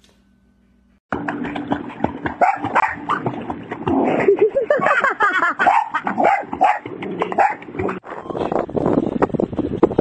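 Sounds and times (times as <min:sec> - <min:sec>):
splashing in water: 0:01.2 - 0:08.0
dog barking and yipping: 0:02.4 - 0:03.3, 0:05.4 - 0:08.0.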